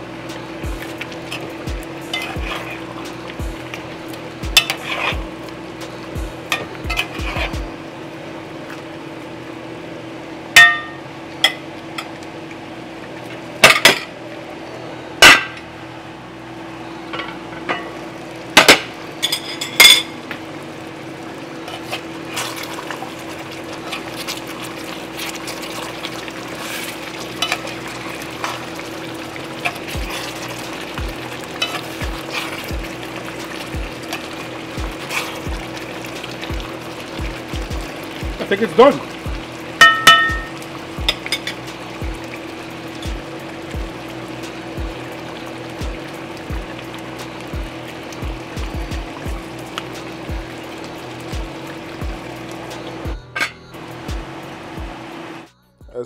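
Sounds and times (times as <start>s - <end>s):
cooking sizzle: 0.0s - 55.5s
metal spoon clinking in pot: 10.6s - 11.6s, 39.8s - 41.6s.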